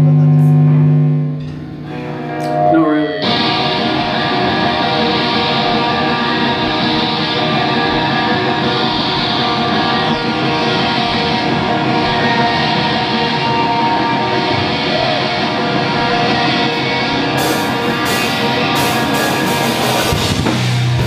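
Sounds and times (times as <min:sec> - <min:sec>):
hardcore band playing: 0:00.0 - 0:21.0
held guitar note: 0:00.0 - 0:21.0.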